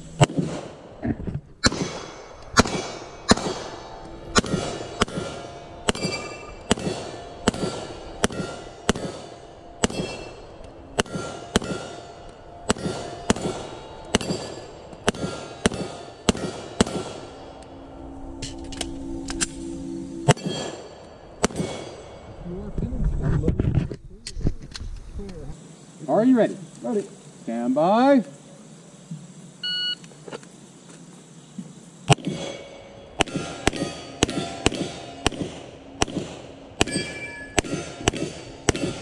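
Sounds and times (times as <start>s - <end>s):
handgun shots: 1.6s - 3.7s, 4.3s - 10.3s, 11.0s - 12.0s, 12.7s - 17.2s, 33.2s - 39.0s
steel plate ringing clang: 1.6s - 22.4s, 32.2s - 39.0s.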